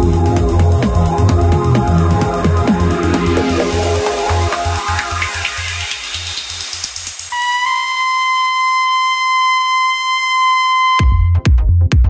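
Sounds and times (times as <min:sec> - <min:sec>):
held buzzy synthesizer note: 0:07.3 - 0:11.3.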